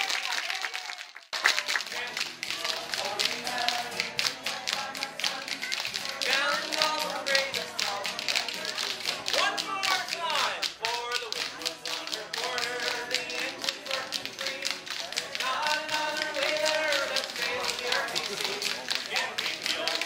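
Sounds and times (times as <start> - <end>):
spoons clicking rhythm: 1.7 - 20.0.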